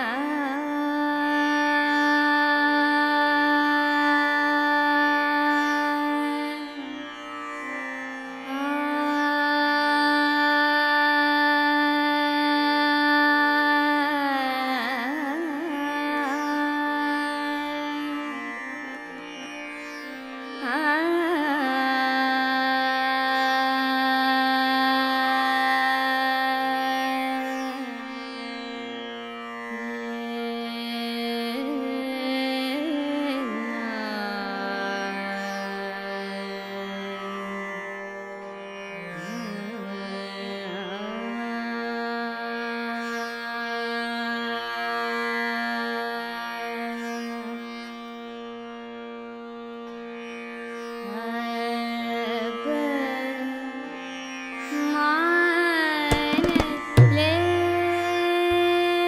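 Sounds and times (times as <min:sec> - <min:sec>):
harmonium: 0:00.0 - 0:07.2, 0:07.9 - 0:29.2, 0:29.8 - 0:38.6, 0:39.2 - 0:54.0, 0:54.7 - 0:59.0
woman singing classical vocal: 0:00.0 - 0:28.2, 0:29.7 - 0:38.0, 0:39.0 - 0:48.4, 0:51.0 - 0:59.0
tanpura: 0:00.0 - 0:59.0
slow tabla strokes: 0:56.0 - 0:59.0.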